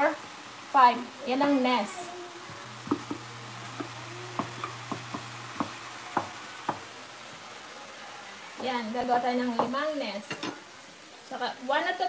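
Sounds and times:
faint sizzle: 0.0 - 12.0.

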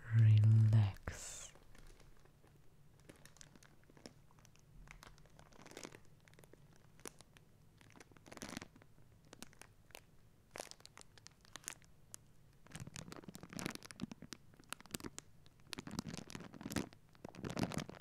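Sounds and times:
plastic bag crinkling: 1.5 - 7.2, 12.7 - 18.0.

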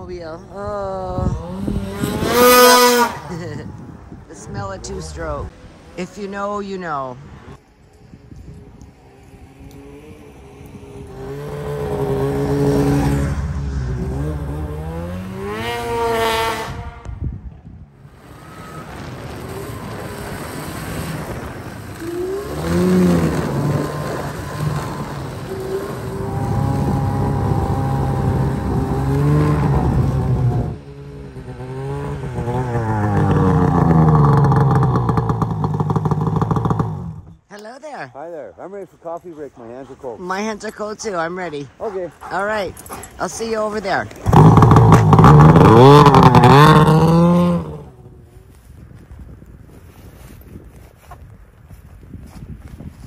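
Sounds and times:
snowmobile engine revving: 0.0 - 7.6, 8.6 - 17.3, 18.0 - 37.4, 38.2 - 48.5.

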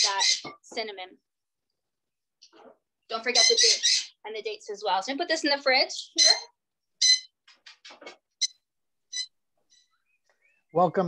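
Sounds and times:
bird chirping: 0.0 - 0.7, 2.4 - 11.0.

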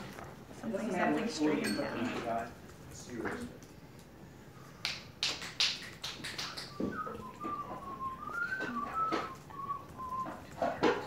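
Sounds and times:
person softly whistling: 6.4 - 10.8.

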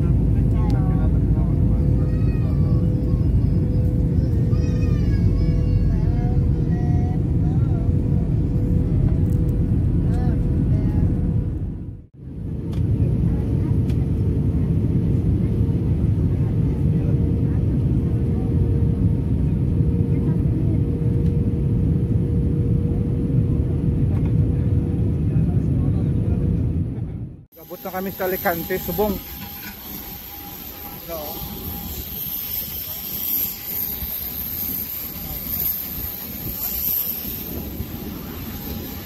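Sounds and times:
airliner cabin engine rumble: 0.0 - 39.0.

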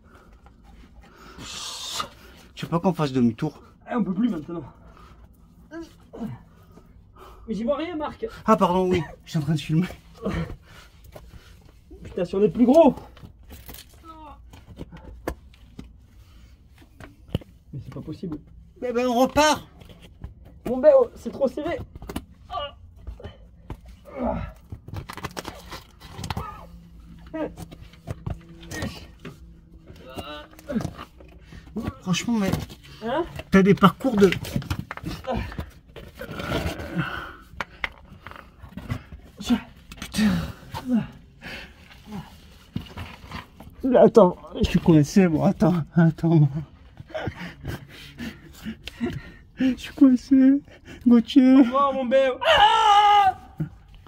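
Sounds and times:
low steady hum: 0.0 - 51.7
man grunting and breathing: 23.1 - 24.7, 38.9 - 42.4.

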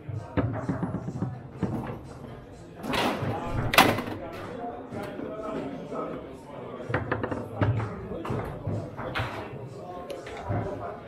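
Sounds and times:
voices in a large hall: 0.0 - 11.0
table football knocks and thuds: 0.3 - 2.0.

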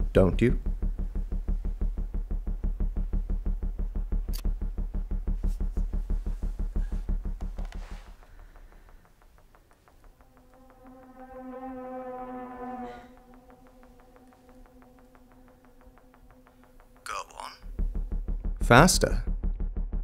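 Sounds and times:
faint ticking pulse: 0.0 - 20.0
pulsing synth beat: 0.0 - 20.0
buzzing drone tone: 0.6 - 9.0, 9.6 - 20.0.

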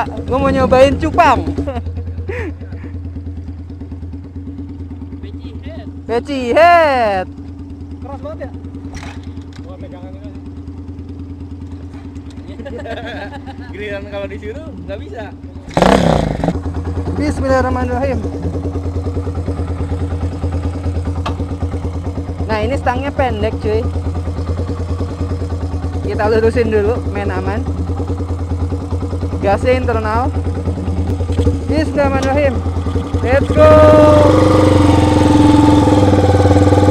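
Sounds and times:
motorcycle engine idling: 0.0 - 36.9.

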